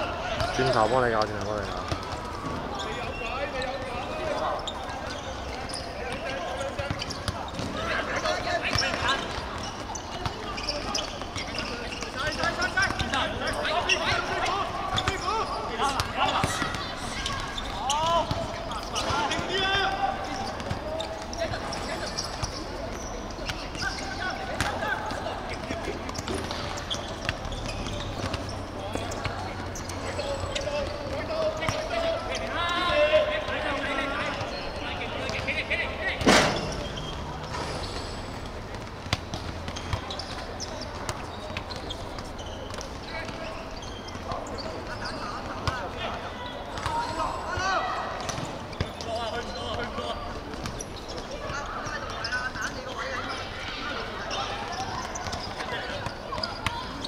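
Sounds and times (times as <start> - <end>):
players shouting: 11.6 - 22.2, 27.9 - 37.5.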